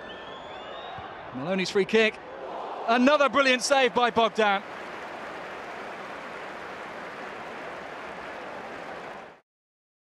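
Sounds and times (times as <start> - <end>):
stadium crowd noise: 0.0 - 9.4.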